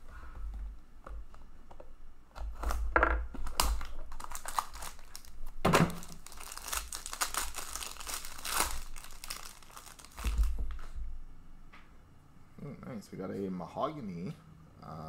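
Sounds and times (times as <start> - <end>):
foil wrapper crinkling and tearing: 3.4 - 10.8.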